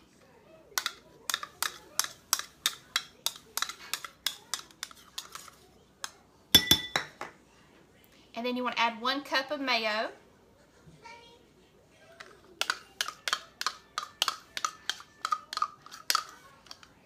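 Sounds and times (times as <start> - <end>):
glass bowl clattering: 6.6 - 7.3.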